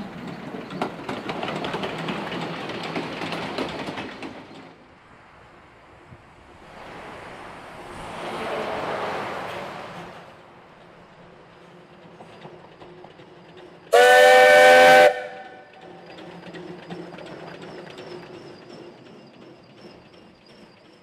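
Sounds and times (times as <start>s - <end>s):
train ticking on rails: 0.0s - 4.8s, 10.6s - 21.0s
steam locomotive running past: 0.0s - 21.0s
steam whistle blast: 13.9s - 15.7s.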